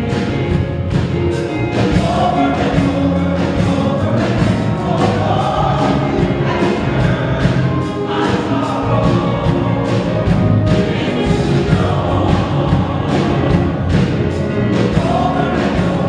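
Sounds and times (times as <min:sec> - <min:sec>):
band accompaniment: 0:00.0 - 0:16.0
gospel choir singing: 0:00.0 - 0:16.0
steady percussion beat: 0:00.0 - 0:16.0.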